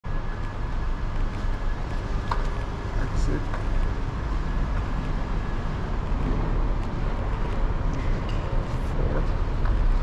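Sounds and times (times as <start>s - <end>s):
parking garage low rumble: 0.0s - 10.0s.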